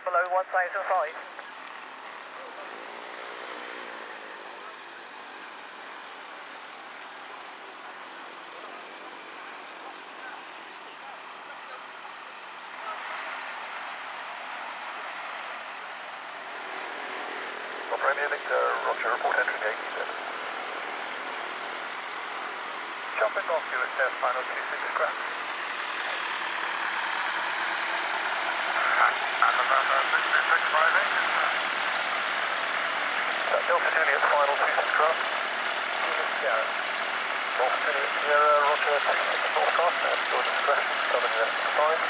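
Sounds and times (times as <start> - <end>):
propeller aircraft engine: 0.0 - 42.0.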